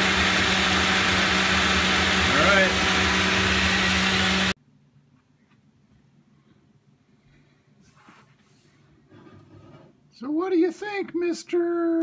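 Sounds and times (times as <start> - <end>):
blender motor whirring: 0.0 - 4.6.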